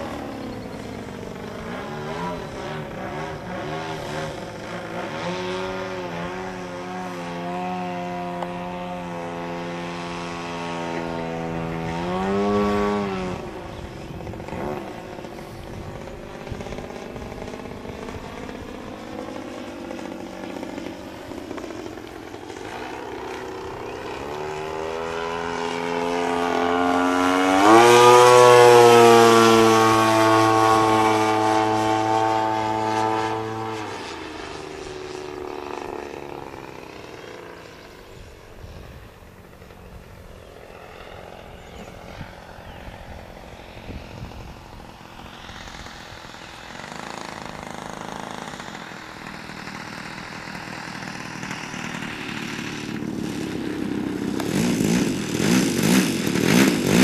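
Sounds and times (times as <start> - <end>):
model plane engine in flight: 0.0 - 57.0.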